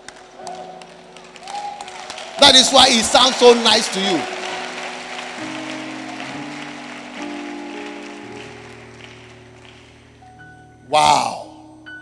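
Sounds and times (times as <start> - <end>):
congregation clapping: 0.0 - 10.3
keyboard playing sustained chords: 0.0 - 12.0.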